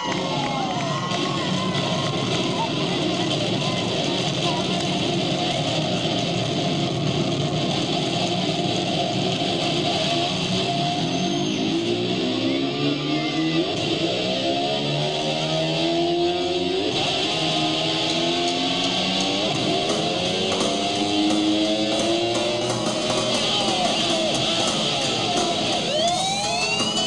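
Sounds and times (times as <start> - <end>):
electric guitar runs: 17.0 - 27.0.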